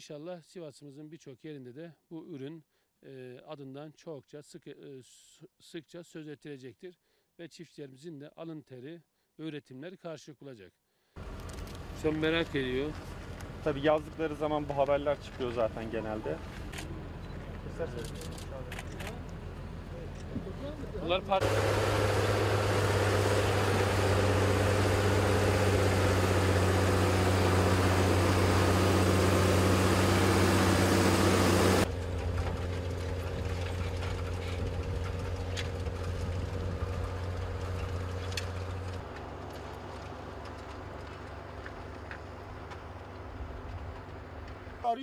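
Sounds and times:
tractor diesel engine running: 21.4s - 42.0s.

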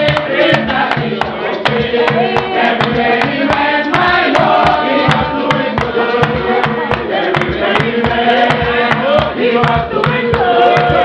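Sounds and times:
group singing a hymn: 0.0s - 11.0s
sharp percussive strikes: 0.0s - 11.0s.

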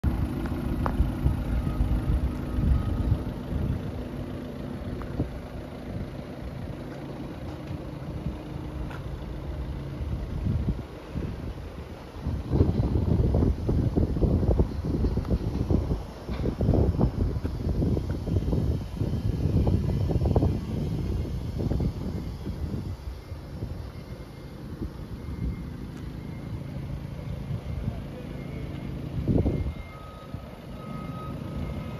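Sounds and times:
wind buffeting microphone: 9.2s - 25.8s, 29.1s - 30.5s.

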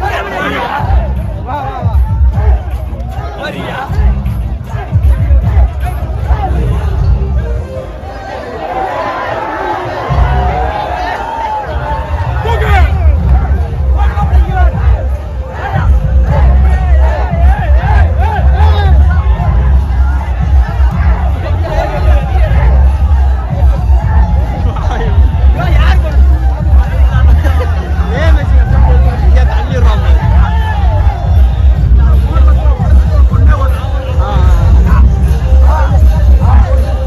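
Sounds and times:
loud dance music with heavy bass: 0.0s - 8.1s, 9.8s - 37.0s
crowd shouting and babbling: 0.0s - 37.0s.

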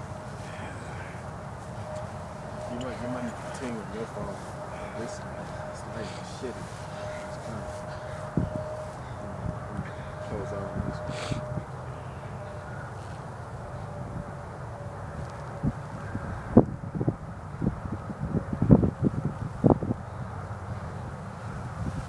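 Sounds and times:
distant traffic: 0.0s - 22.0s
wind: 0.0s - 22.0s.

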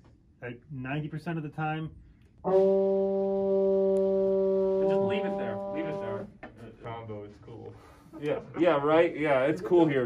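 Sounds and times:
trombone holding a note: 2.4s - 6.3s
people talking: 4.8s - 10.0s.

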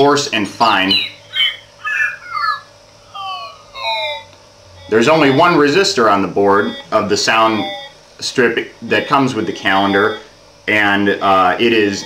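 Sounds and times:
electronic whistled bird chirps: 0.7s - 3.6s.

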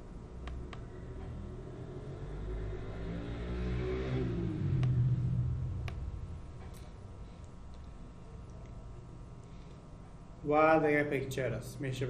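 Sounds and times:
vehicle engine rising in pitch: 0.7s - 7.1s.

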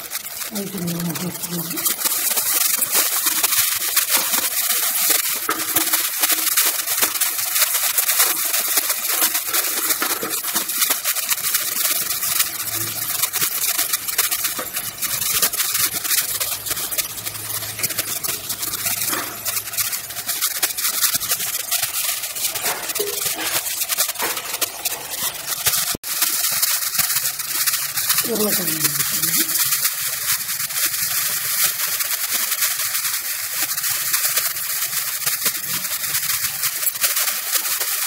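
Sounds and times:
vegetables sizzling in hot oil: 0.0s - 38.0s
metal ladle stirring: 0.1s - 32.9s.

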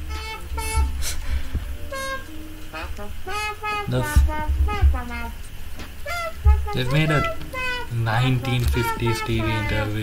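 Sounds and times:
buzzy synthesizer notes: 0.0s - 1.2s, 1.8s - 10.0s
brief hiss: 0.9s - 1.5s.

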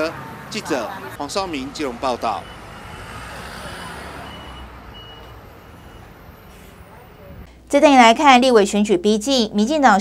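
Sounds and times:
bus engine running: 0.0s - 7.5s
street noise: 0.0s - 8.2s
short high beeps: 4.2s - 6.8s.

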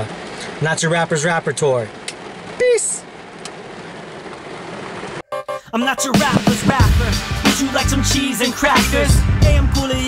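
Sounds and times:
rain on a car: 0.0s - 5.2s.

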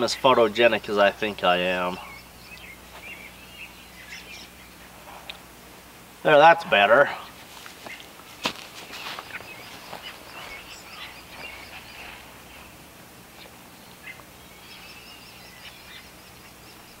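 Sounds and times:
high bird trill: 0.0s - 5.0s, 7.0s - 17.0s
songbirds chirping and trilling: 0.0s - 17.0s.

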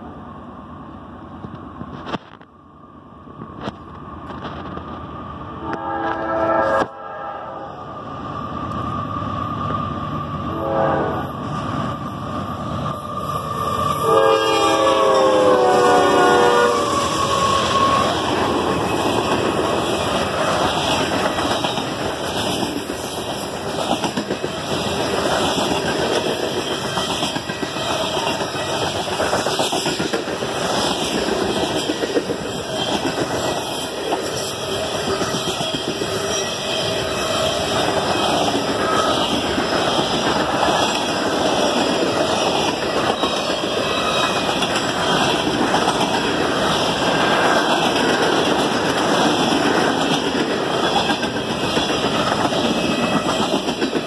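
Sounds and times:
train wheels on rail: 0.0s - 54.0s.

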